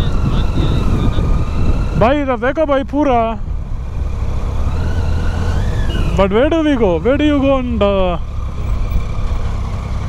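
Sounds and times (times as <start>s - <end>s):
wind rumble on microphone: 0.0s - 6.2s
motorcycle engine running: 0.0s - 10.0s.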